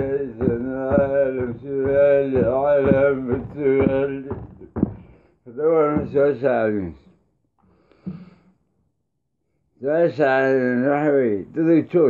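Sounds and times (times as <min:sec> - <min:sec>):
man singing chant-like melody: 0:00.0 - 0:04.8, 0:05.5 - 0:07.0
short taps: 0:00.0 - 0:05.3, 0:07.9 - 0:08.4.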